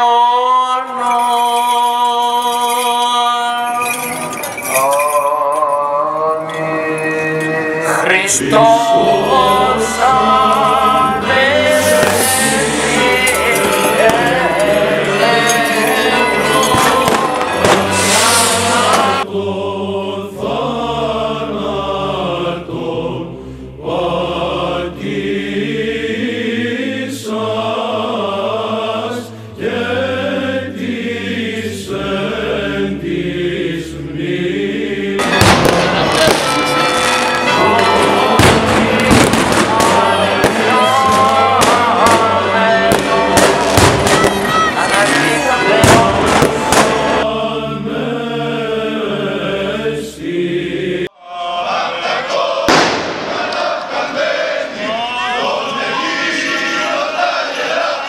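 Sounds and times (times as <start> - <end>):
clergy chanting a hymn: 0.0 - 58.0
fireworks bangs and crackles: 11.2 - 19.2, 35.2 - 47.2, 52.7 - 53.6.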